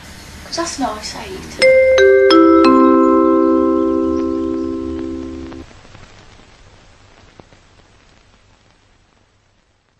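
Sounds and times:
bell-like chime chord: 1.6 - 5.6.

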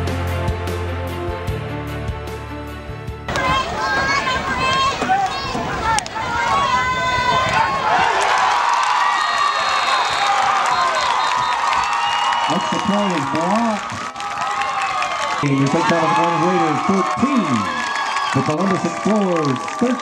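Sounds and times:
music: 0.0 - 4.9
crowd shouting and cheering: 3.3 - 20.0.

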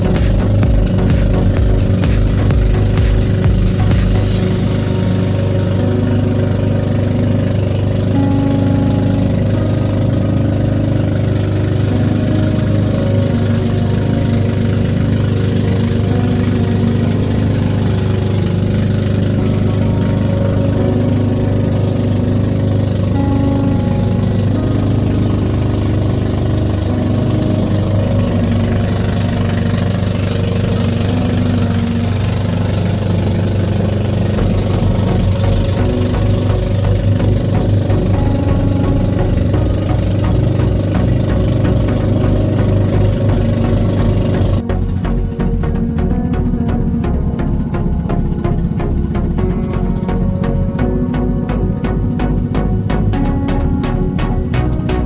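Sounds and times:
background music: 0.0 - 55.0
boat engine droning: 0.0 - 55.0.

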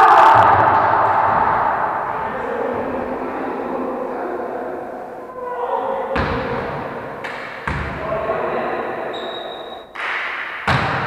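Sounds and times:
raised voice echoing in hall: 0.0 - 11.0.

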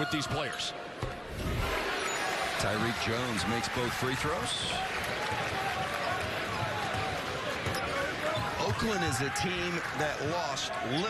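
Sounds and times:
basketball bouncing on hardwood: 5.3 - 8.9.

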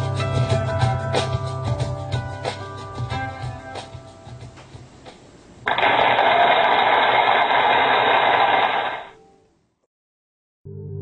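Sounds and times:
static hiss: 3.8 - 9.2.

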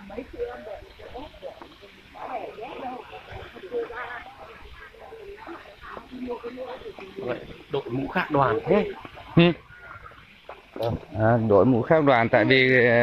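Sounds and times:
indistinct background talking: 0.0 - 13.0.

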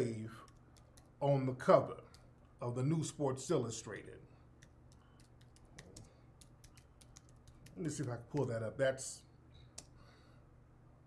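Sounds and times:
faint typing on keyboard: 0.4 - 1.2, 2.0 - 2.4, 4.0 - 8.6.

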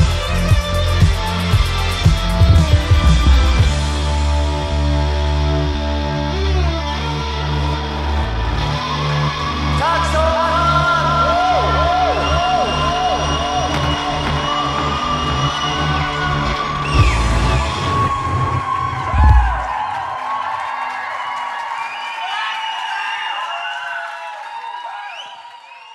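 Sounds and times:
audience cheering and whooping: 7.0 - 25.9.

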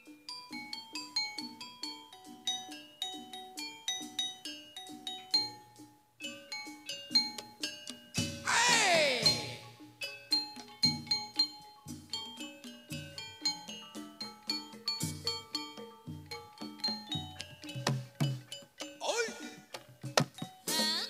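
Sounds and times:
gamelan metallophone notes: 0.0 - 21.0.

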